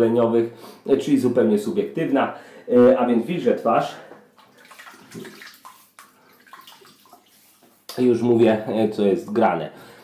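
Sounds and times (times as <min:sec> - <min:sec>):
water splashing at a sink: 0:04.4 - 0:08.2.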